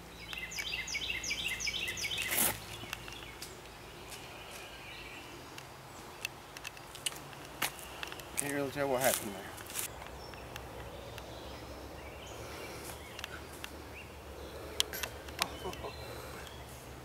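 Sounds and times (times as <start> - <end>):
songbird singing: 0.0 - 17.0.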